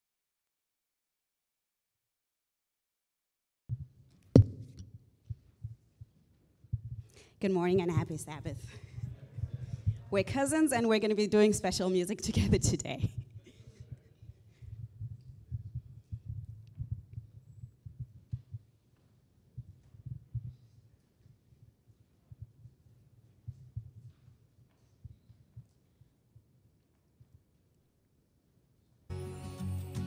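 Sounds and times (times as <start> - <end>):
microphone handling thumps: 4.4 - 5.0.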